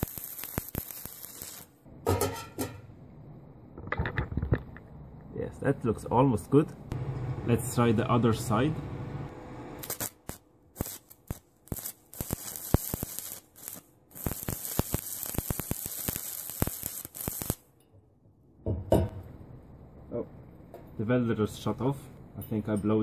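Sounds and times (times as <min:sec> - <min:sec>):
welding arc crackling: 0:00.0 - 0:01.8, 0:09.3 - 0:17.7.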